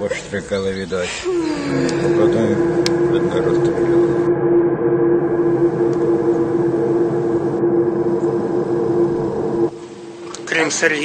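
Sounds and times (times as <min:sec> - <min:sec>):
ambient drone of low tones: 0:00.7 - 0:11.0.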